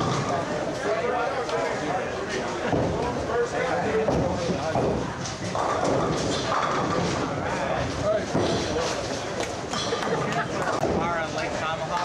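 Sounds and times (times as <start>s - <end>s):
indistinct chatter: 0.0s - 12.0s
bowling ball rolling: 3.9s - 8.8s.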